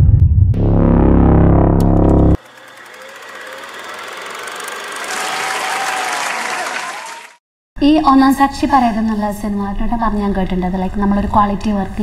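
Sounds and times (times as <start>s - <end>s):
loud music: 0.6s - 2.4s
crowd applause: 2.4s - 7.4s
faint crowd cheering: 2.4s - 7.4s.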